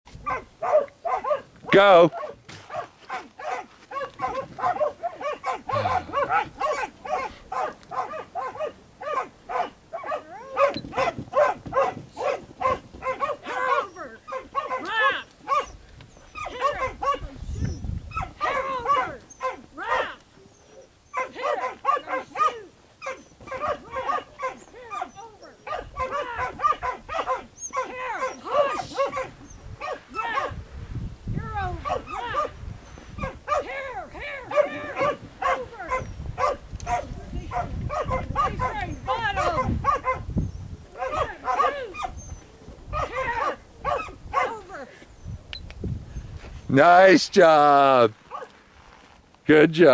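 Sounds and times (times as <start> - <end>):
dog barking: 0.2 - 1.5, 2.1 - 15.8, 16.4 - 17.3, 18.1 - 20.2, 21.1 - 30.6, 31.8 - 32.6, 33.2 - 33.8, 34.4 - 40.3, 41.0 - 42.2, 42.9 - 44.6.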